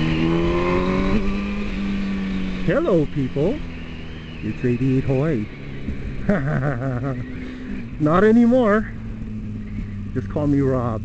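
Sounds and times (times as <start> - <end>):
man laughing: 6.2 - 7.5.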